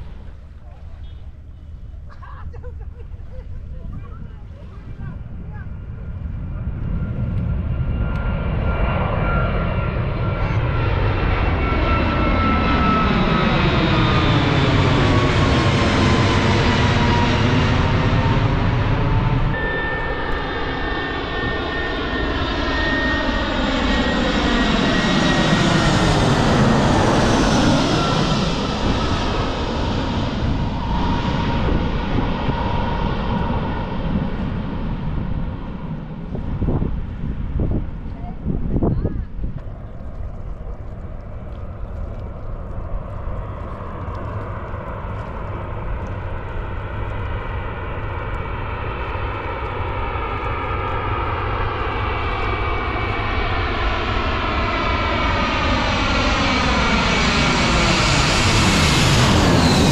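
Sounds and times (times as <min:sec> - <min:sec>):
airliner engine whine passing: 0:00.0 - 0:59.9.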